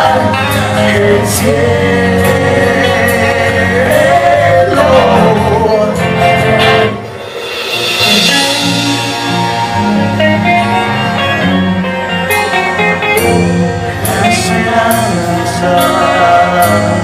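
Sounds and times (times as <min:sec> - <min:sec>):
rock band playing live: 0:00.0 - 0:17.0
sharp drum hits: 0:07.0 - 0:09.9.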